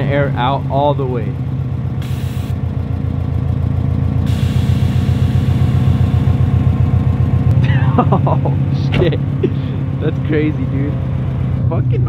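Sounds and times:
car engine idling: 0.0 - 12.0
air suspension hissing: 2.0 - 2.6, 4.2 - 6.5.

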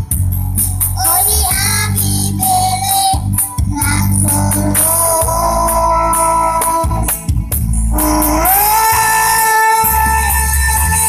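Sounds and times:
backing music with heavy bass: 0.0 - 11.0.

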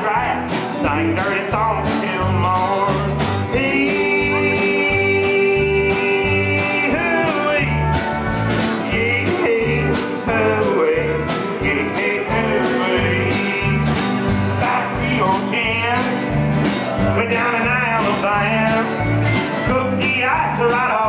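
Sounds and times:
drum kit steady beat: 0.0 - 20.9
acoustic and electric guitars: 0.0 - 21.0
electric bass: 0.0 - 21.0.

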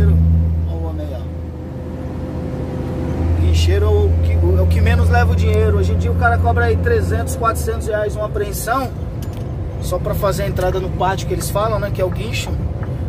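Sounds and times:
man talking: 0.0 - 1.4, 3.4 - 9.0, 9.8 - 12.6
truck engine droning: 0.0 - 13.0.

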